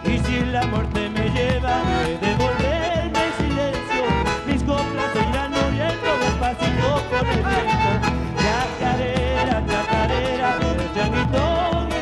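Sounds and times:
bass drum steady beat: 0.0 - 12.0
electric bass: 0.0 - 12.0
strummed acoustic guitars: 0.0 - 12.0.

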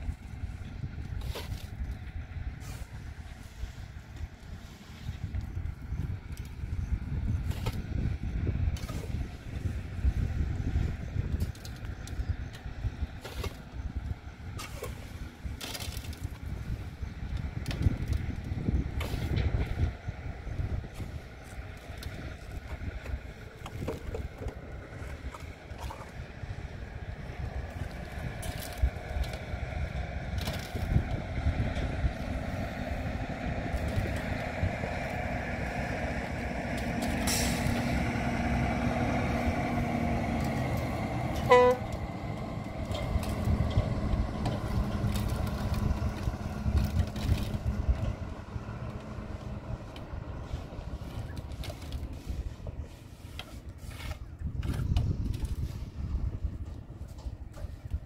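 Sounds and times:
truck engine rumbling: 0.0 - 58.0.

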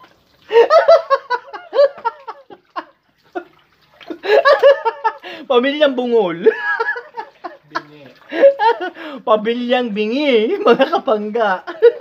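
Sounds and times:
men laughing: 0.5 - 5.5, 6.3 - 9.2, 10.4 - 12.0.

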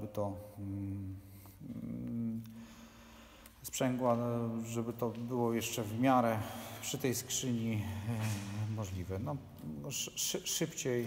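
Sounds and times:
man humming hesitantly: 0.6 - 2.7.

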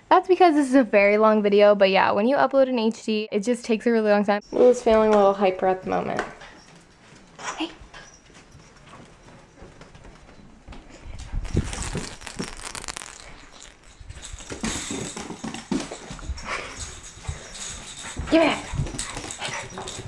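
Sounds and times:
dog footsteps on wooden floor: 4.8 - 20.0.

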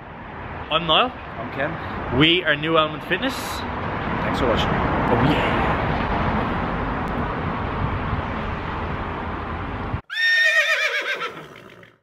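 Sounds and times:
outdoor background noise: 0.0 - 12.0
horse whinny: 10.1 - 12.0.

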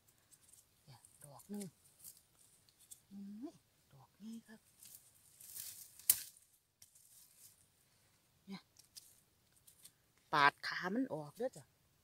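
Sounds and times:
soft rustling: 0.0 - 3.1, 4.6 - 10.0.

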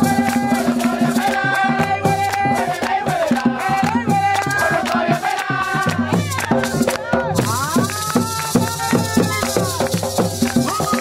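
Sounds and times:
drums: 0.0 - 11.0
shaken rattle: 3.3 - 11.0.

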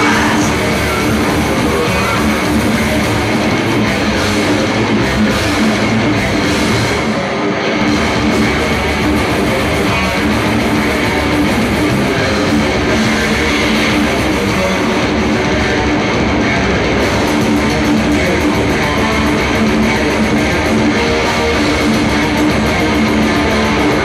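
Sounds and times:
heavy metal band playing: 0.0 - 24.0.

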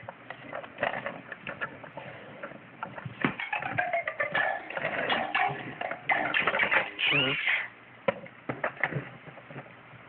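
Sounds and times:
baby squealing: 7.0 - 7.7.

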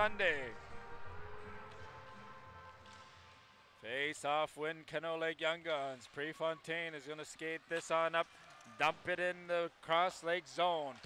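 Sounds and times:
faint music over sound system: 0.0 - 11.0.

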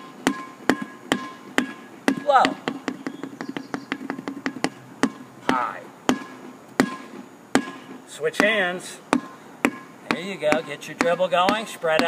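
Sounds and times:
ball bouncing on asphalt: 0.0 - 12.0.

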